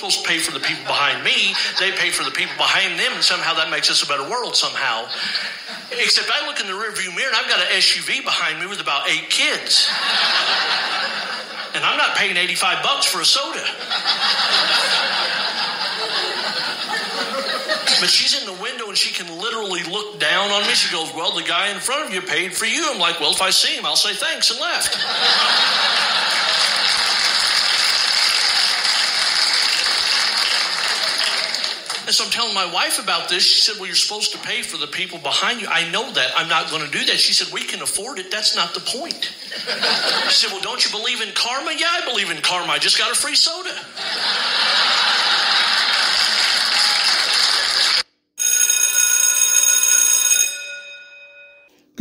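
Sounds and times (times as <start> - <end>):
bell ringing: 48.4 - 51.9.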